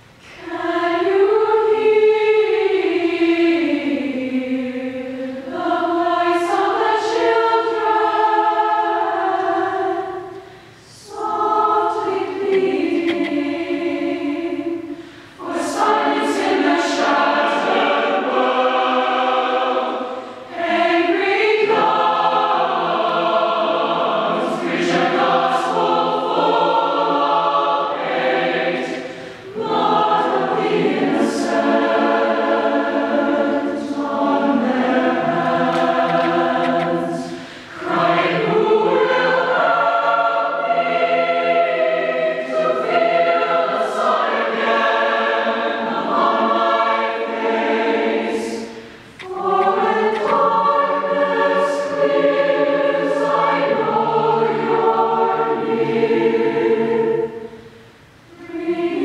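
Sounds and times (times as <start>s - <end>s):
choir singing sustained chords: 0.0s - 59.0s.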